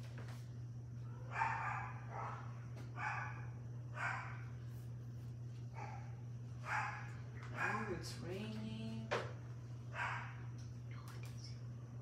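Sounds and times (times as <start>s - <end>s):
steady low hum: 0.0s - 12.0s
dog barking: 1.3s - 4.4s, 5.8s - 8.0s, 9.9s - 10.4s.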